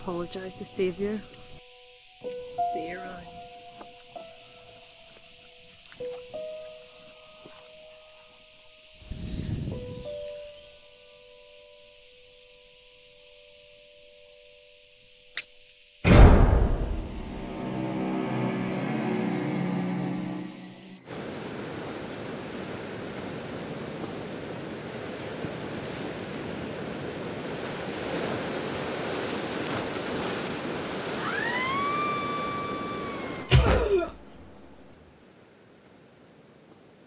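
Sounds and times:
loud hit with downward sweep: 16.0s - 18.5s
waves rushing: 16.1s - 37.0s
sustained music chord: 16.6s - 21.1s
rising whistling tone: 31.2s - 33.5s.

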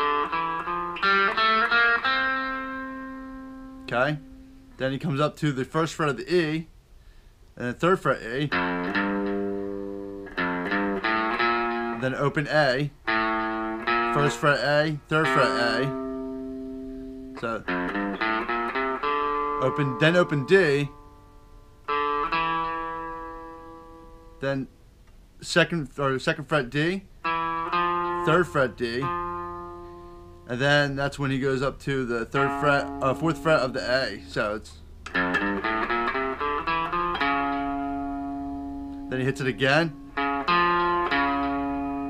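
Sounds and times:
electric guitar plucked notes: 0.0s - 5.2s, 8.1s - 25.0s, 26.6s - 42.0s.

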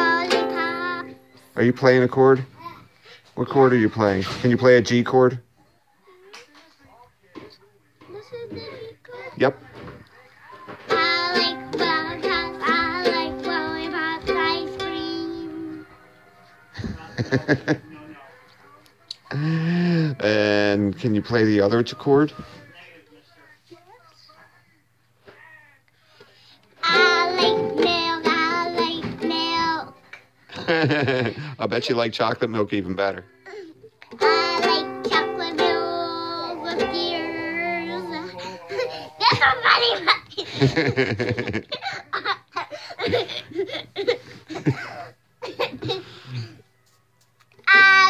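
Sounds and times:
girl singing loudly: 10.9s - 15.7s, 26.8s - 29.9s, 34.2s - 40.1s, 47.7s - 48.0s
faint voices murmuring: 35.0s - 40.0s
young girl laughing: 38.0s - 46.1s.

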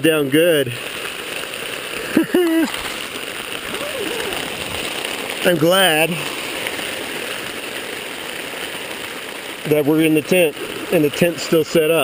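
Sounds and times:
heavy rain on tent: 0.0s - 12.0s
high-pitched voice sound: 3.7s - 4.5s.

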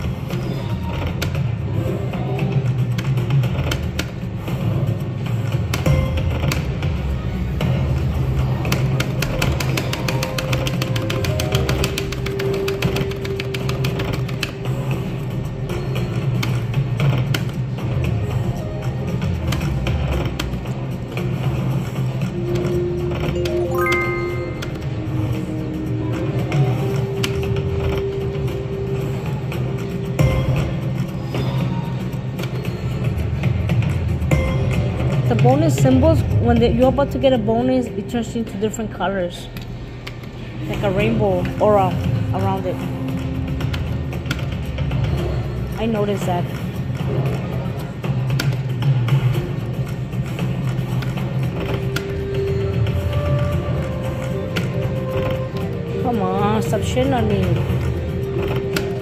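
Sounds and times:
slot machine game music: 22.2s - 38.6s, 51.4s - 59.0s
rising notes: 23.4s - 25.0s.

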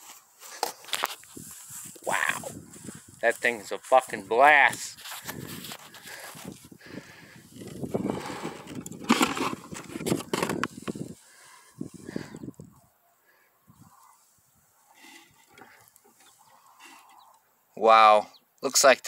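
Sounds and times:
camera handling rustling: 0.4s - 2.0s, 5.0s - 6.7s, 7.5s - 11.1s.

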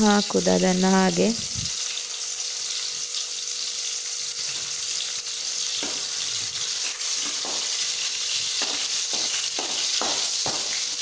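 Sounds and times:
oil sizzling in a pan: 0.0s - 11.0s.

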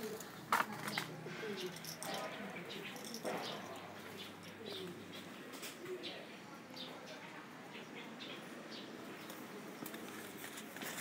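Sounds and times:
dove cooing: 0.0s - 6.2s
small birds chirping: 0.0s - 10.8s.

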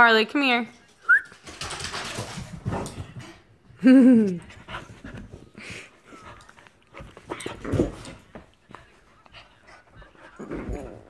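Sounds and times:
dog panting: 4.4s - 11.0s.

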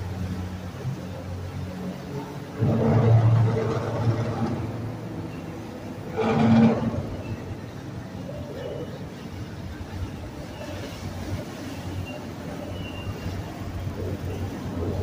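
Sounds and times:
boat engines humming: 0.0s - 15.0s.

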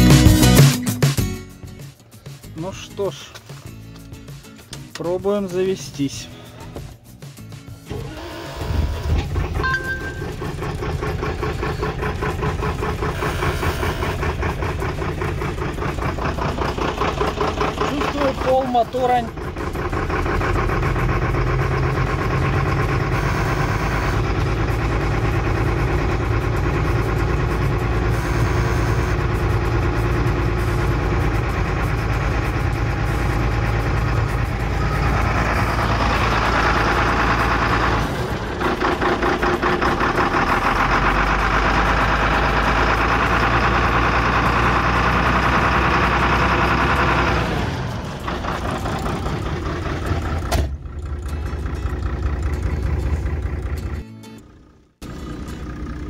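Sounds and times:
diesel truck engine idling: 1.6s - 56.0s.

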